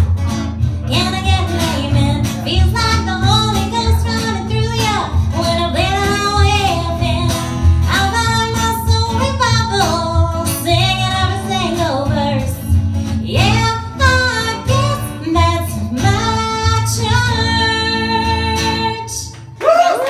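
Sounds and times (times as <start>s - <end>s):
washtub bass pulse: 0.0s - 18.6s
strummed acoustic guitar: 0.0s - 19.4s
woman singing: 0.8s - 19.4s.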